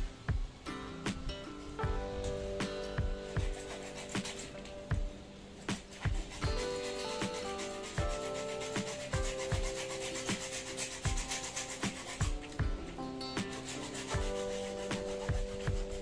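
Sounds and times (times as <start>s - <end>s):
background music with beat: 0.0s - 16.0s
hacksaw cutting plastic pipe: 3.4s - 4.9s, 5.7s - 16.0s.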